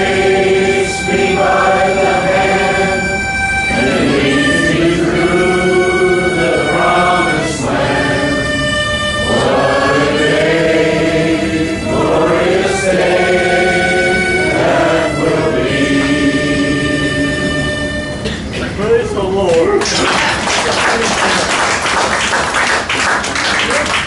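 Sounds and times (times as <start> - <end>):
harmonica playing chords: 0.0 - 18.6.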